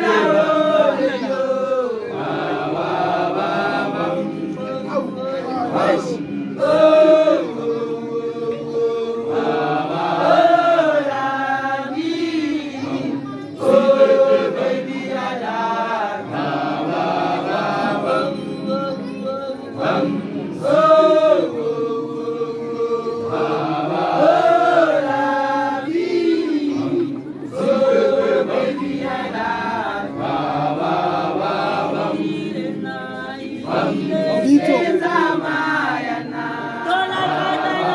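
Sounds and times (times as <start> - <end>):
group singing unaccompanied chant: 0.0 - 37.9.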